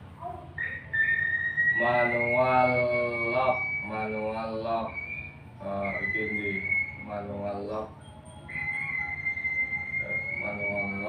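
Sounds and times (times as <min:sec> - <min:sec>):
low background hum: 0:00.0 - 0:11.0
high whistle-like tone rising: 0:00.6 - 0:11.0.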